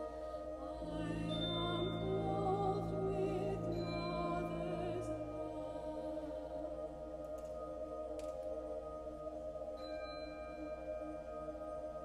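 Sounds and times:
concert band sustained chord: 0:00.0 - 0:07.5
high ringing tone: 0:00.8 - 0:06.3.

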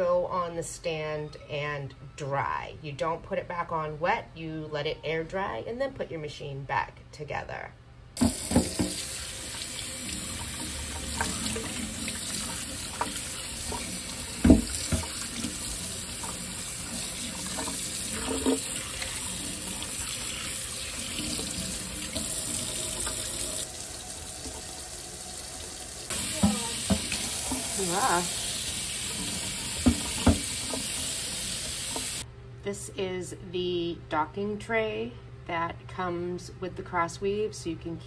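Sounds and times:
faucet running into sink: 0:08.2 - 0:32.2.

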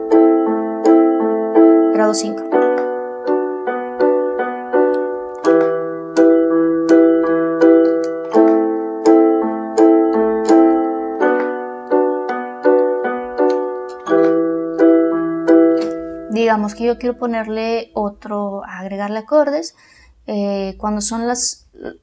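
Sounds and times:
electronic keyboard chords: 0:00.0 - 0:18.3.

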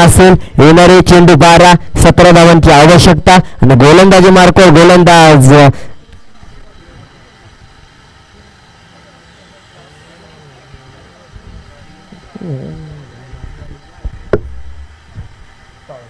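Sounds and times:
faint distant voices: 0:05.9 - 0:16.0
low steady hum: 0:11.6 - 0:16.0.

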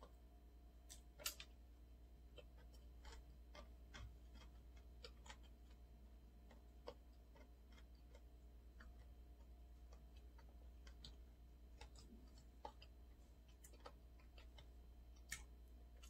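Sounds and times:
low steady hum: 0:00.0 - 0:16.0
person chewing food: 0:00.8 - 0:16.0.

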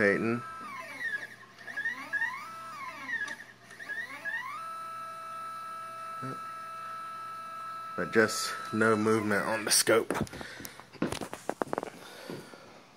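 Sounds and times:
stepper motor whine: 0:00.0 - 0:10.4.

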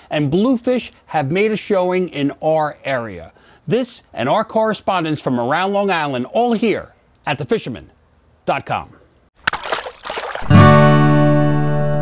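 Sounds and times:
water splash sound effect: 0:09.4 - 0:11.1
loud guitar chord ringing: 0:10.5 - 0:12.0.

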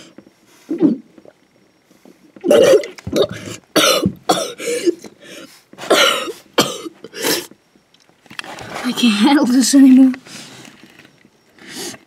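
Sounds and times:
boy coughing: 0:02.5 - 0:05.1, 0:05.9 - 0:07.5.

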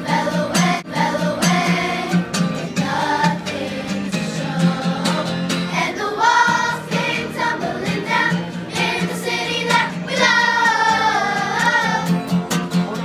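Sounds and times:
children's chorus singing: 0:00.0 - 0:12.3.

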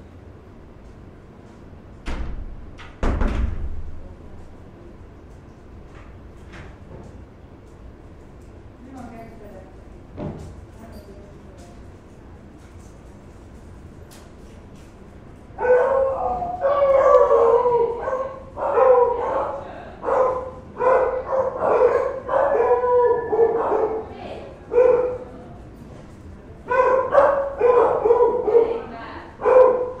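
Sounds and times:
dog yelping and barking: 0:15.6 - 0:24.0.

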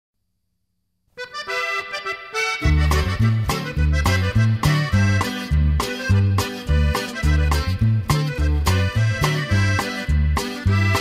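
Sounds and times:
accordion: 0:01.2 - 0:11.0
bass line with rhythm: 0:01.2 - 0:11.0.

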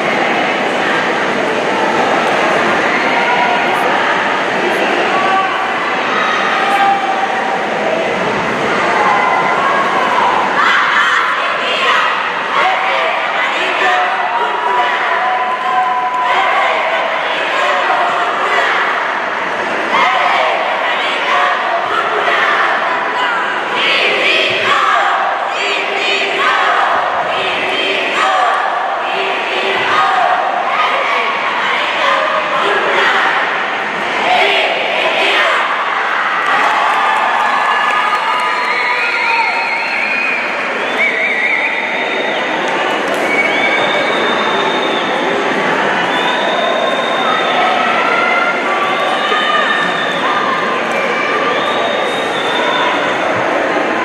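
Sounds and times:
crowd cheering: 0:00.0 - 0:54.0
cheerleaders shouting in unison: 0:08.8 - 0:40.8, 0:45.8 - 0:54.0.

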